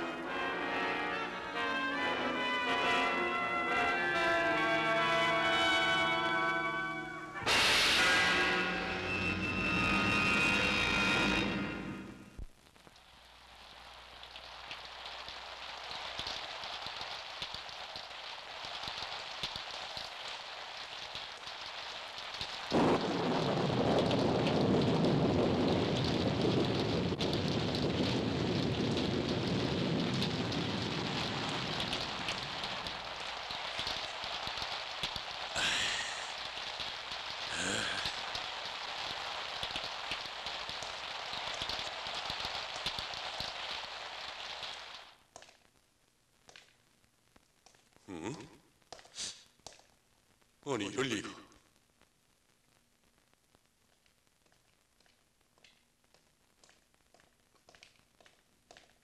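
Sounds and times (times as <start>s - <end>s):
steady rain: 0.0s - 59.0s
thunder rumbling: 22.4s - 43.5s.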